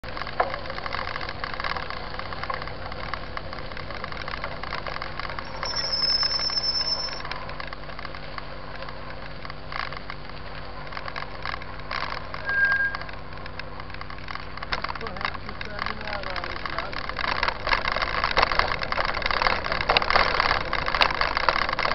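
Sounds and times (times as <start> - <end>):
bike rolling and rattling: 0.0 - 21.9
brief high squeal: 5.5 - 7.2, 12.4 - 13.1.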